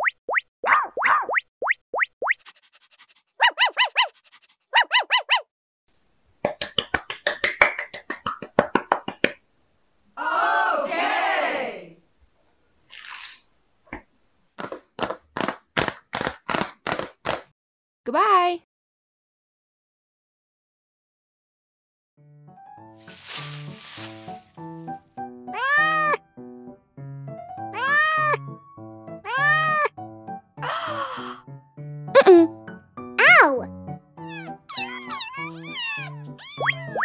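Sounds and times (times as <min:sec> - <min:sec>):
fast rising chirps: 0:01.6 - 0:05.4.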